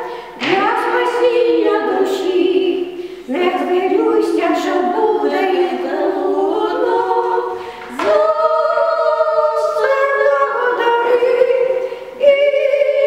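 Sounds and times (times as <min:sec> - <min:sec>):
women singing unaccompanied: 0:00.0 - 0:13.0.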